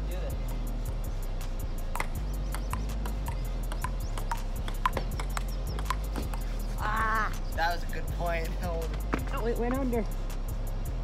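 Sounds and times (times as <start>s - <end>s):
background music with steady beat: 0.0s - 11.0s
table tennis ball clicking: 2.0s - 6.4s.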